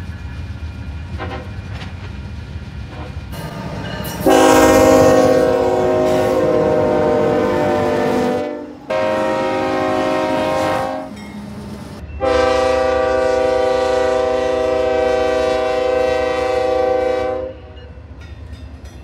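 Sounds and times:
low rumble of moving train: 0.0 - 19.0
locomotive air horn blasts: 3.4 - 11.2, 12.2 - 17.8.

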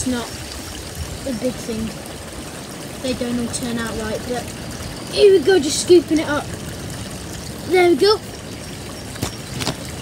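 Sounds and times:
pond water splashing and trickling: 0.0 - 10.0.

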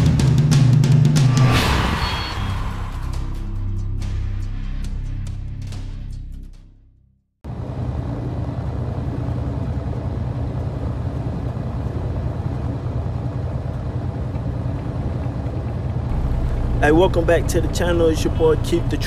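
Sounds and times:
truck engine and road rumble: 7.5 - 19.0.

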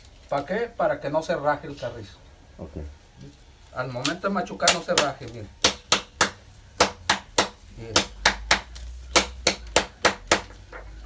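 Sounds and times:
stone pounding cane on stone: 4.0 - 10.9.

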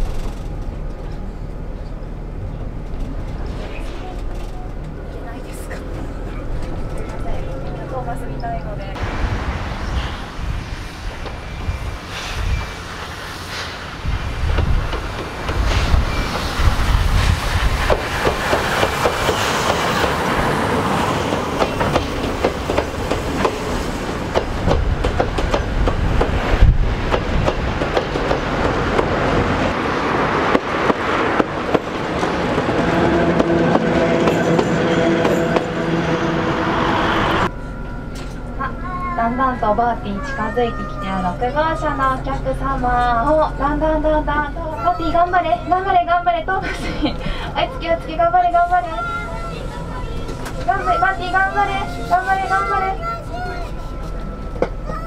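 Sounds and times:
wheels clattering over rail joints: 0.0 - 8.8
steam train passing rumble: 0.0 - 55.0.

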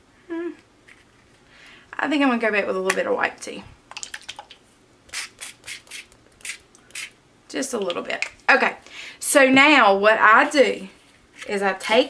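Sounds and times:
spray bottle hissing squirts: 5.1 - 7.1.

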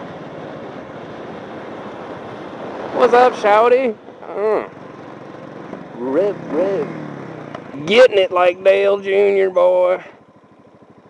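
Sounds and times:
motorcycle engine running: 3.8 - 11.0
person calling out: 4.2 - 4.8.

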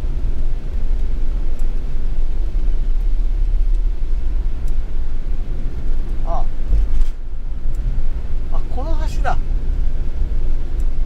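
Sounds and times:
van driving on wet road: 0.0 - 11.0.

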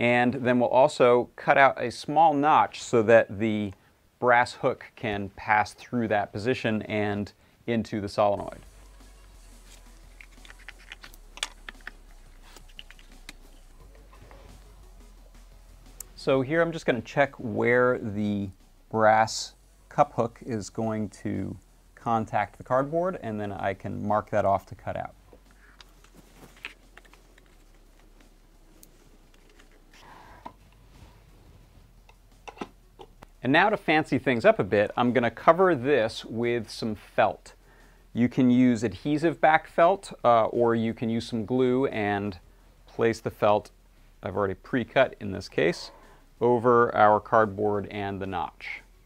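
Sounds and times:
faint low hum: 4.2 - 49.0.

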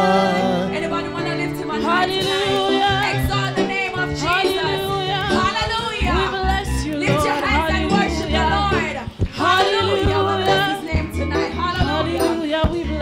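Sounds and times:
gospel choir singing: 0.0 - 12.5
keyboard accompaniment: 0.0 - 13.0.

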